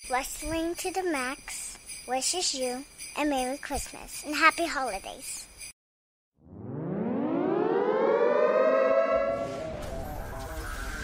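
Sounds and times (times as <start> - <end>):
siren winding up: 6.4 - 11.0.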